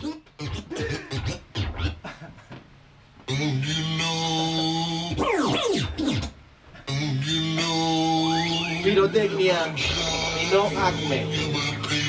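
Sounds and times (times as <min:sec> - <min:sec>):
vinyl record scratching: 0:00.0 - 0:02.0, 0:03.3 - 0:12.0.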